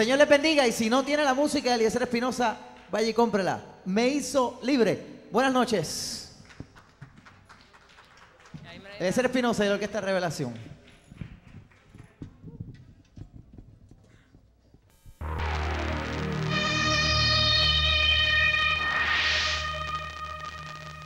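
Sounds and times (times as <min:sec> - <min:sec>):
electronic logo jingle: 0:15.2 - 0:21.0
whoosh sweeping up: 0:15.3 - 0:21.0.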